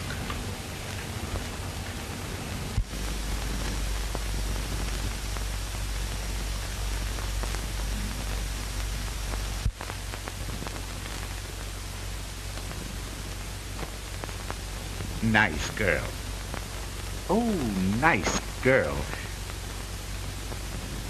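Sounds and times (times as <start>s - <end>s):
soundtrack hiss and hum: 0.0s - 21.0s.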